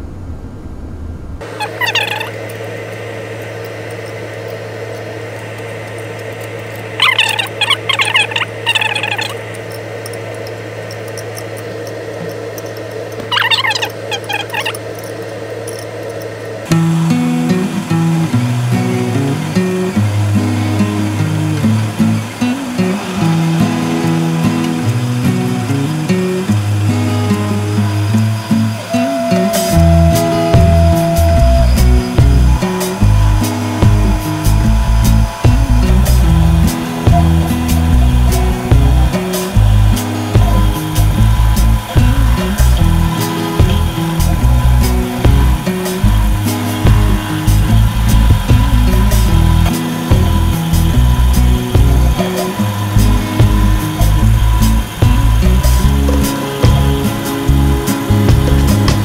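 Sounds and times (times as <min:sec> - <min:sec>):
steady hum: 0:00.0 - 0:59.0
clamps squeaking: 0:01.4 - 0:02.7, 0:06.0 - 0:16.4
background music with guitar: 0:16.7 - 0:59.0.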